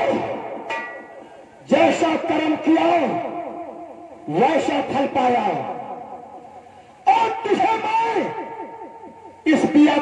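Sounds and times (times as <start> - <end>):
man shouting with echo: 0.0 - 0.6, 1.6 - 6.0, 7.0 - 10.0.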